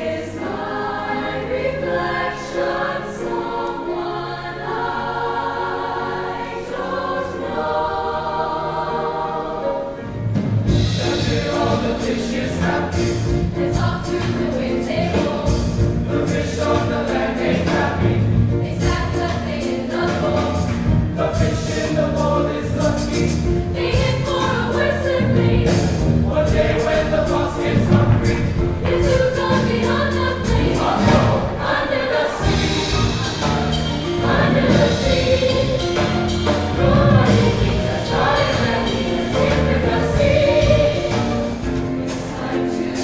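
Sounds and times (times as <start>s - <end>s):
choir singing a show tune: 0.0s - 43.0s
instrumental accompaniment: 0.0s - 43.0s.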